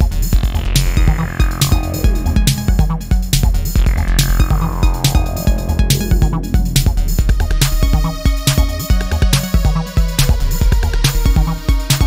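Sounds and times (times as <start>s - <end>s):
deep bass line: 0.0s - 11.6s
synth tone sweeping downward: 0.3s - 8.3s
drum machine beat: 0.4s - 8.1s.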